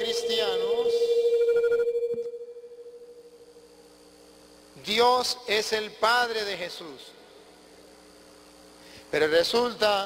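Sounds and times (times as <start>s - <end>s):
steady electronic tone: 0.0s - 4.2s
faint steady hum: 0.0s - 10.0s.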